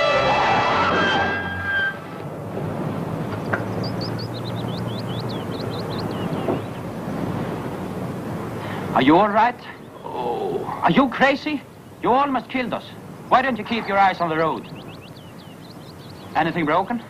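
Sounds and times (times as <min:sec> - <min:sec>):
dramatic brass music: 0:00.0 - 0:02.2
noisy hiss: 0:00.0 - 0:17.0.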